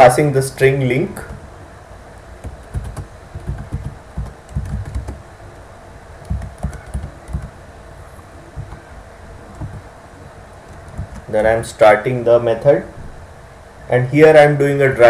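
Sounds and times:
typing on computer keyboard: 2.4 - 5.2, 6.2 - 7.5, 9.5 - 9.8, 10.7 - 11.3.

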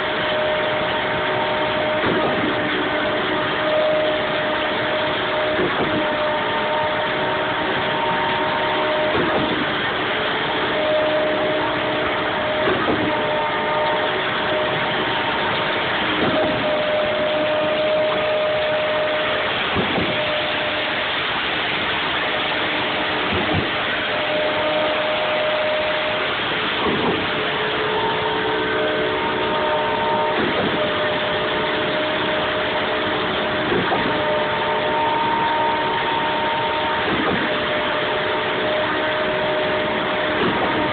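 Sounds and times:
concrete pump engine drone: 0.0 - 40.9.

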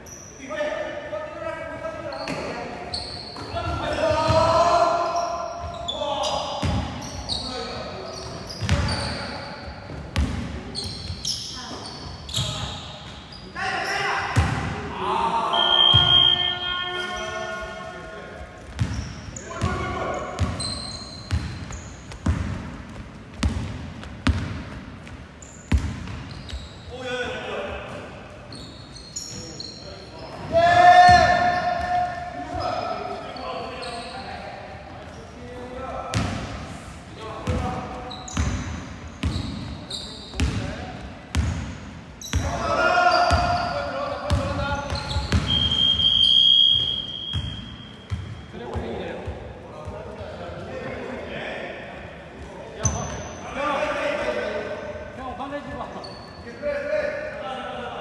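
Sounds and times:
players shouting: 13.6 - 18.0, 30.4 - 32.7
basketball bouncing on wooden floor: 21.3 - 26.3.

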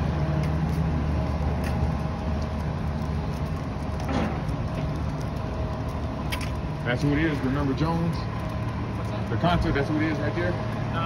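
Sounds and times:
street traffic rumble: 0.0 - 11.0
vehicle engine running: 0.0 - 11.0.

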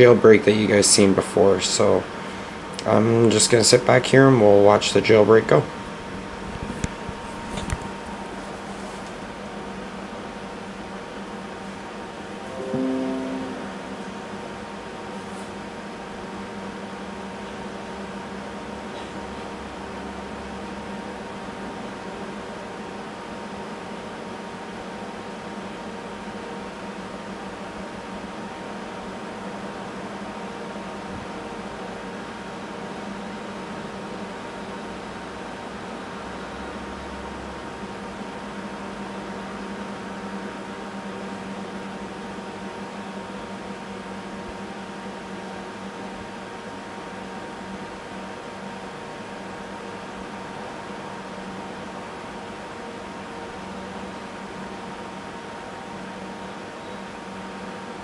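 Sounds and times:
fan-like machine humming: 0.0 - 11.9.

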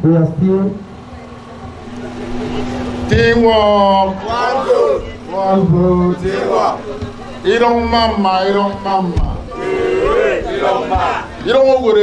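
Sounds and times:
man calling out into microphone: 3.1 - 6.8, 7.4 - 9.4, 11.4 - 12.0.

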